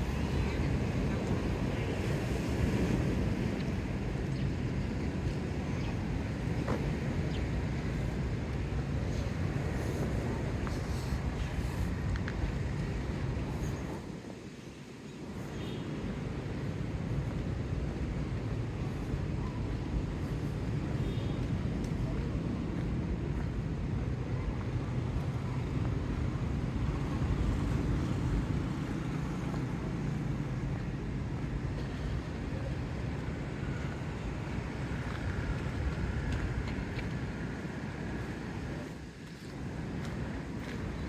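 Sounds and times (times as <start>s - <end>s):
distant traffic: 0.0s - 41.0s
wind on microphone: 0.0s - 41.0s.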